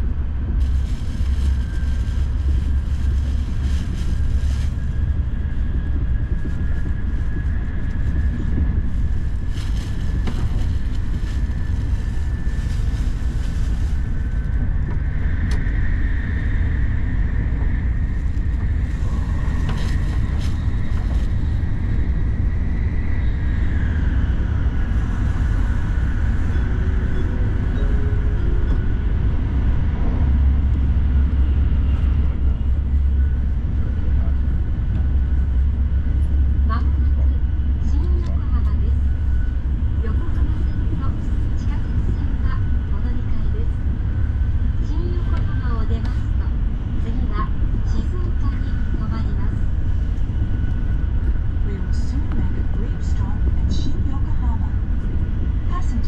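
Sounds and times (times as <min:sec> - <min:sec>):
train cabin low rumble: 0:00.0 - 0:56.0.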